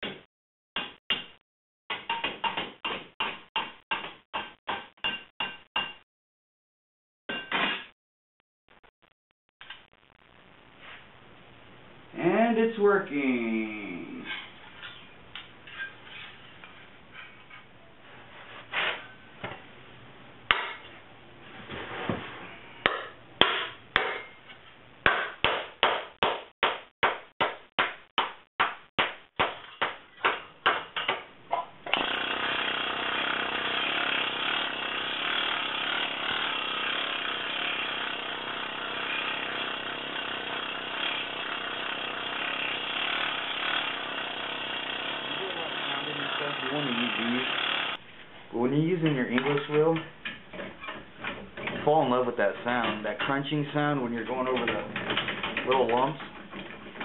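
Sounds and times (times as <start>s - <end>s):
hammer striking sheet steel: 22.8s - 24.4s.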